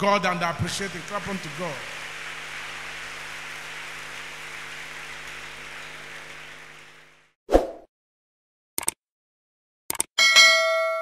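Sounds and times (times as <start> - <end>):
crowd clapping: 0.0 - 7.3.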